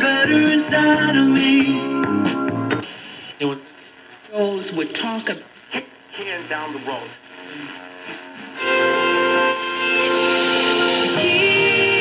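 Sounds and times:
music through radio speaker: 0:00.0 - 0:12.0
radio static between stations: 0:01.2 - 0:09.0.

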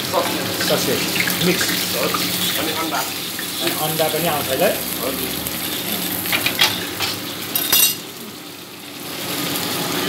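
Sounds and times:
food frying in hot oil: 0:00.0 - 0:10.0.

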